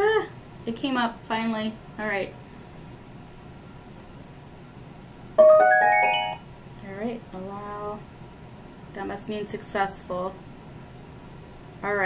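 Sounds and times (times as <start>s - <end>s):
rising electronic chime: 5.4s - 6.4s.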